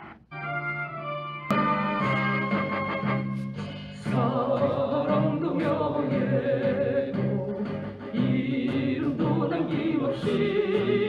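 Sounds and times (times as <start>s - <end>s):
group singing in chorus: 3.9s - 11.0s.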